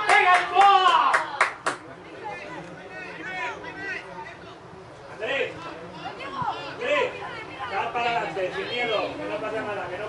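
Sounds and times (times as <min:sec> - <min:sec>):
spectators clapping rhythmically: 0:00.0 - 0:01.9
crowd chatter: 0:00.0 - 0:10.0.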